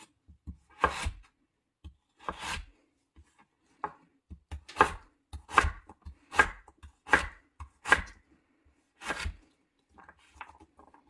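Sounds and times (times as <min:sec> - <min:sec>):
knife chopping on wooden board: 0:00.0 - 0:08.2, 0:09.0 - 0:09.4.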